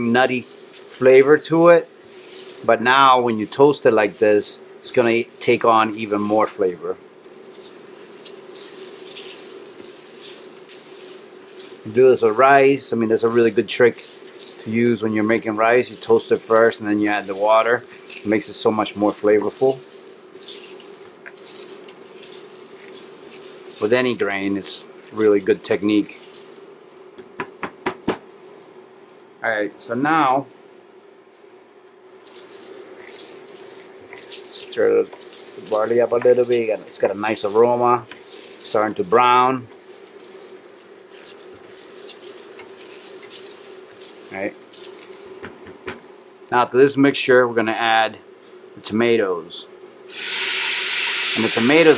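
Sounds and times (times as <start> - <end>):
faint steady hum: 0.0 - 51.9.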